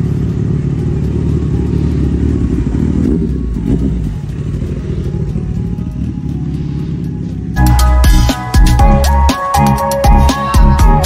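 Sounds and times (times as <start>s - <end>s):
motorcycle passing by: 0.0s - 8.5s.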